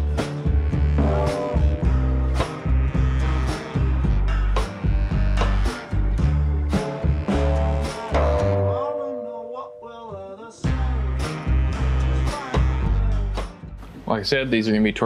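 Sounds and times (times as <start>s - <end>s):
music with heavy bass beat: 0.0s - 8.7s.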